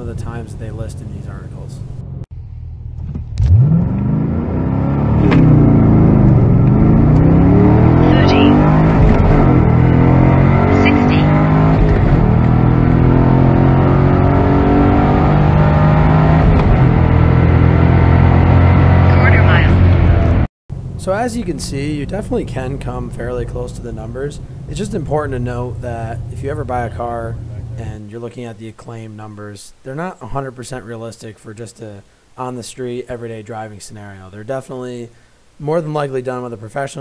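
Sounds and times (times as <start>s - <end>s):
car engine at full throttle: 2.0s - 27.9s.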